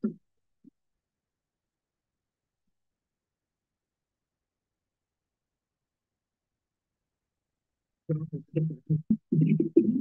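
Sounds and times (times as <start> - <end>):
low murmuring voice: 8.1 - 10.0.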